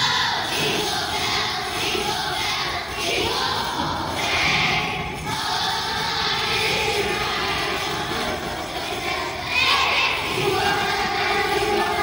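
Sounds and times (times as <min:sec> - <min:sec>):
children singing: 0:00.0 - 0:12.0.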